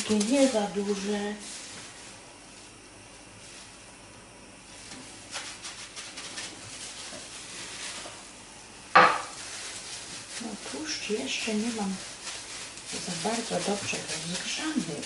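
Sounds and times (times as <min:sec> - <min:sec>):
faint crackling in frying pan: 0:04.7 - 0:15.0
kitchenware knock: 0:09.0 - 0:09.3.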